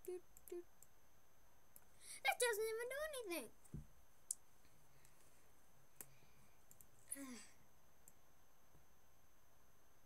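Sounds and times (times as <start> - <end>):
computer mouse clicking: 6.7 - 6.9.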